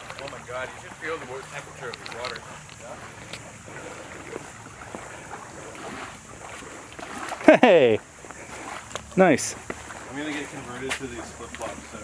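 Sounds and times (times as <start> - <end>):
water lapping against rocks: 0.0 - 12.0.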